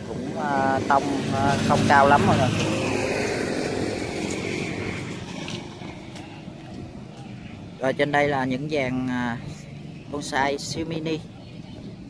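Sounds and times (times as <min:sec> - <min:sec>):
passing vehicle engine: 0:00.0 - 0:10.1.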